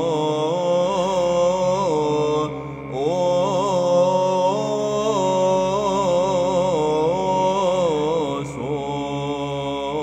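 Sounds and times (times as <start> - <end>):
held vocal drone: 0.0 - 10.0
ornamented chant melody: 0.0 - 10.0.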